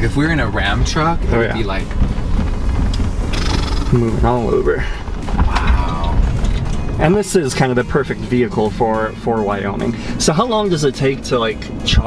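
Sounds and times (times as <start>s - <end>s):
road and tyre noise inside car: 0.0s - 12.0s.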